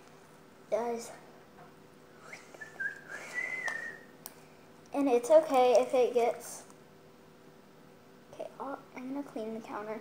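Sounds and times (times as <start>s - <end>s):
person whistling soft note: 2.2s - 4.0s.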